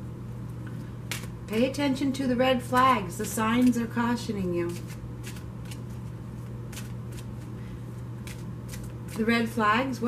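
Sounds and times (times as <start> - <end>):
steady low hum: 0.0 - 10.0.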